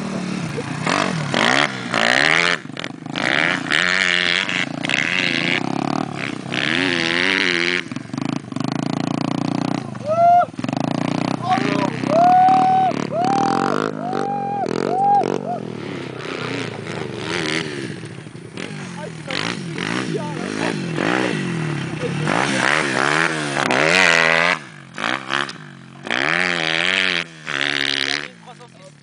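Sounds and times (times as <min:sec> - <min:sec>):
small motorcycle engine revving: 0:00.0 - 0:29.0
voices: 0:11.3 - 0:16.2, 0:18.6 - 0:23.6, 0:28.1 - 0:29.0.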